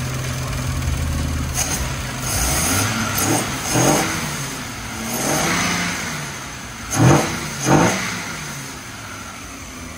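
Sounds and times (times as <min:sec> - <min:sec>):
car engine revving: 0:00.0 - 0:09.9.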